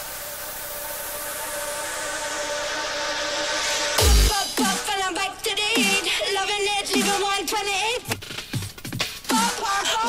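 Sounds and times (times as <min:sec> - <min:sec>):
white-noise sweep: 0:00.0 - 0:04.9.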